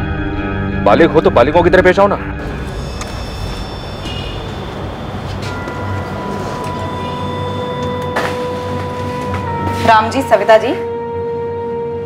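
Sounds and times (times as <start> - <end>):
low rumbling drone: 2.2 - 11.1
thin sustained high tones: 2.4 - 9.2.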